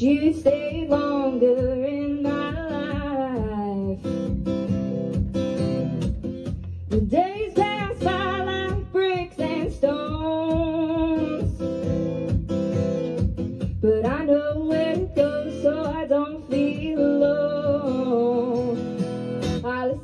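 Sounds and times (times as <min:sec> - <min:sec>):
strummed acoustic guitars: 0:00.0 - 0:20.0
woman singing folk song: 0:00.0 - 0:20.0.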